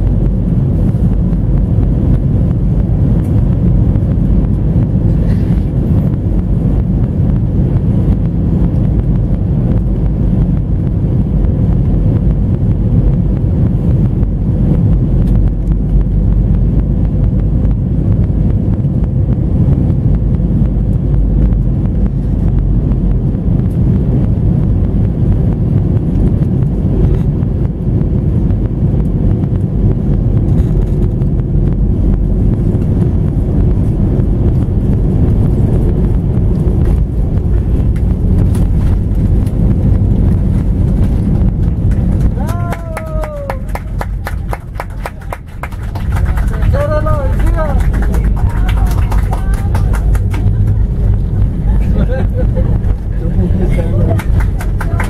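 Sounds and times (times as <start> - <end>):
low rumble of engines and airflow: 0.0 - 55.0.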